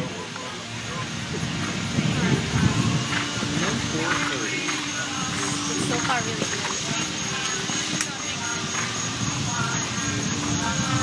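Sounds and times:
background music: 0.0s - 11.0s
people talking: 0.0s - 11.0s.

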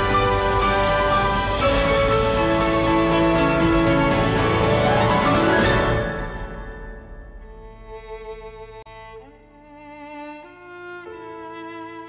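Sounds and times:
violin playing slow melody: 7.2s - 12.0s.

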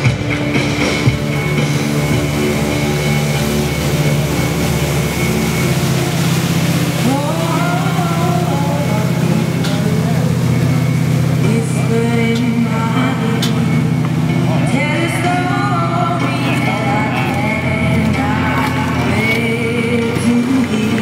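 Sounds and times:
boat engine drone: 0.0s - 21.0s
music playing: 0.0s - 21.0s.

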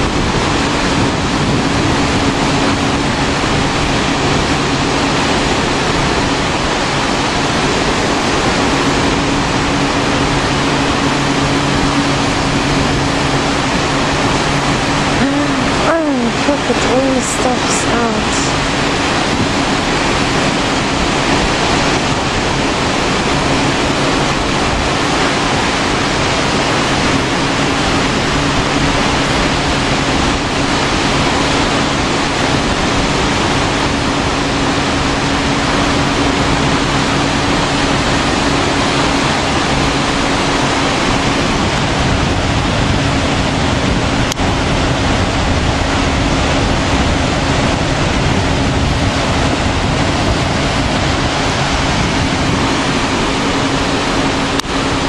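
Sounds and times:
sea surf breaking on beach: 0.0s - 55.0s.

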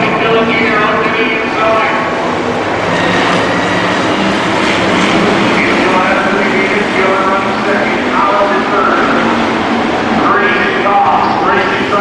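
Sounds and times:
race car engines revving: 0.0s - 12.0s.

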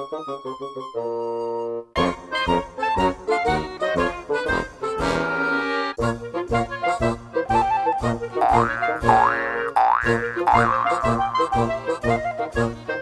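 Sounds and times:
bouncy playful music: 0.0s - 13.0s
sliding boing sounds: 8.4s - 11.7s.

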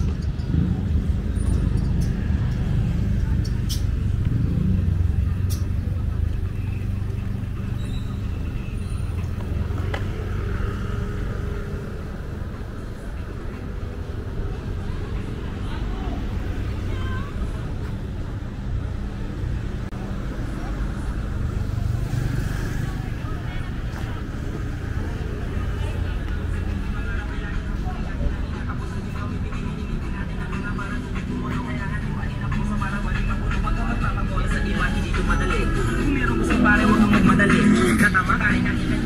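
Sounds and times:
people talking: 0.0s - 10.4s, 12.9s - 18.5s, 19.9s - 39.0s
road traffic rumble: 0.0s - 39.0s.

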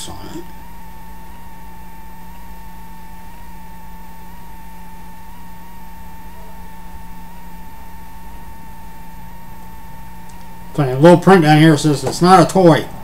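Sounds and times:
high-pitched electrical whine: 0.0s - 13.0s
low hum: 0.0s - 13.0s.

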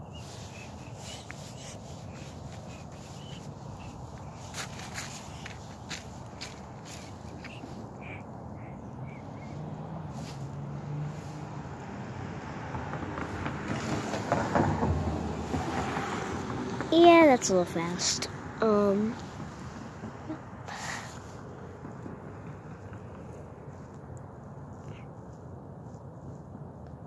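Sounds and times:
footsteps: 0.2s - 8.2s.

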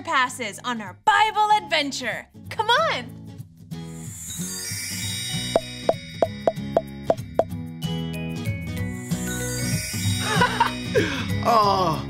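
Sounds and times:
cheerful children's music: 4.2s - 12.0s.

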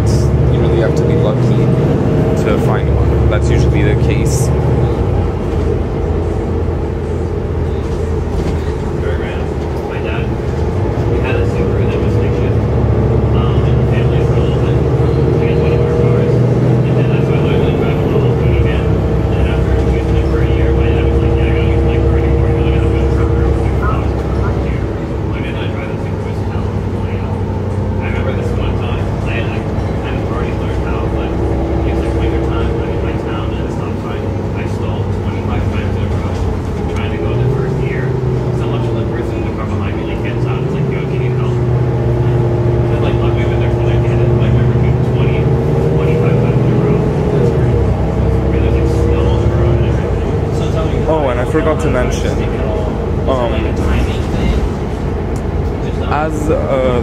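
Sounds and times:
bus engine drone: 0.0s - 57.0s
passengers talking: 0.0s - 57.0s.

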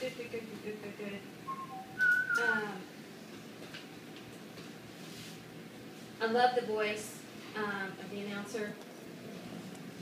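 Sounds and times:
person whistling: 1.5s - 2.6s.

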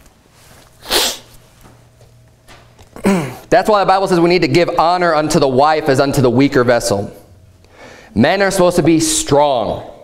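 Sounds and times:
man clearing his throat: 2.9s - 3.5s.

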